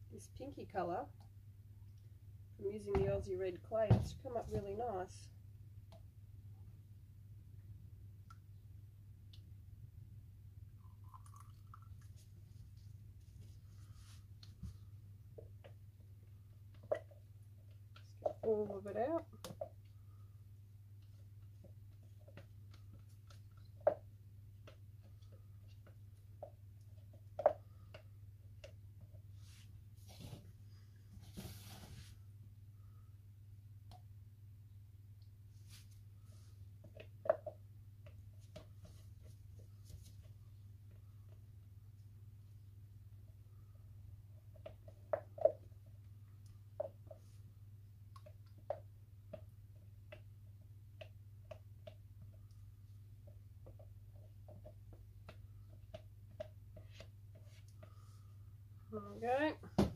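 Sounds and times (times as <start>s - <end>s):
soap batter poured and stirred: 10.6s - 14.3s.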